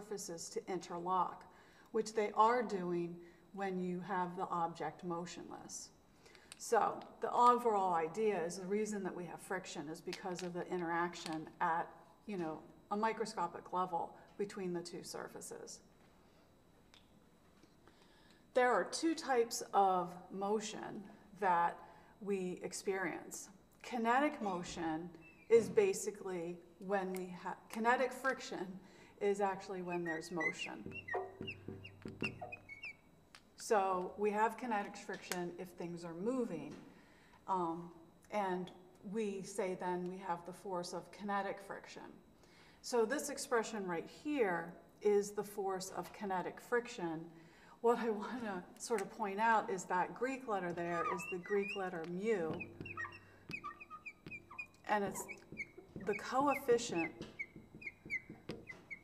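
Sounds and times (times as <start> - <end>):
marker squeaking on glass: 25.1 - 25.8, 29.6 - 33.1, 50.6 - 59.0.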